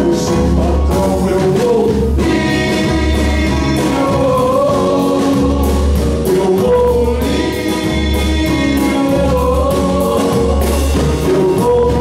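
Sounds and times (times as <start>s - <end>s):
deep bass notes: 0.0s - 12.0s.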